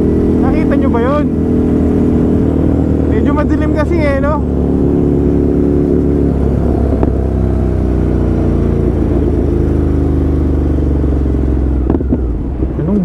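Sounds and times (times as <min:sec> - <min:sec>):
motorcycle engine running: 0:00.0 - 0:13.0
road rumble: 0:00.0 - 0:13.0.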